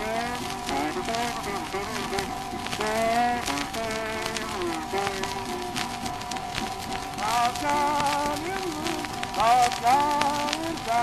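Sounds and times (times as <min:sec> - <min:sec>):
guitar: 0:00.0 - 0:11.0
record surface crackle: 0:00.0 - 0:11.0.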